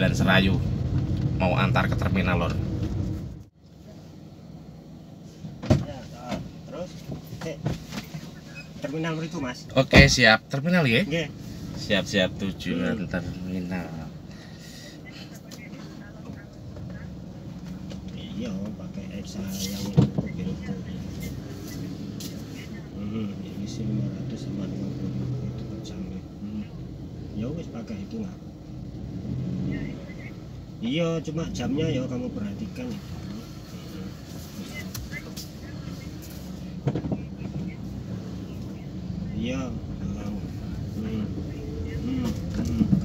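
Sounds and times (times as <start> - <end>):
car engine rumble: 0.0 - 43.0
road noise inside car: 0.0 - 43.0.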